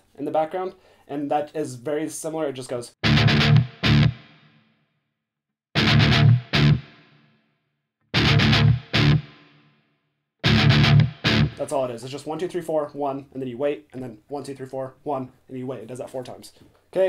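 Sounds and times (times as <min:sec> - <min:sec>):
distorted electric guitar strums: 0:03.0 - 0:04.4, 0:05.8 - 0:07.2, 0:08.2 - 0:09.6, 0:10.4 - 0:11.8.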